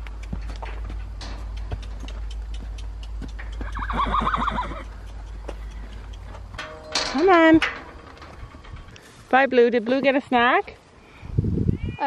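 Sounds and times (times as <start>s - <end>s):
horse whinnying: 3.6s - 4.9s
light clicks and knocks: 4.8s - 9.2s
low rumble: 4.8s - 9.4s.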